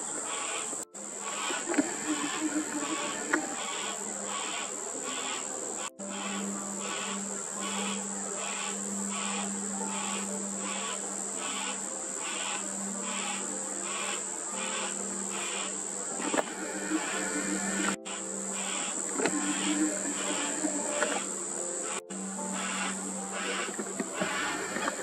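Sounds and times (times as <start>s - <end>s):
high-pitched drone: 0.0s - 25.0s
cockatoo chick rasping call: 0.3s - 25.0s.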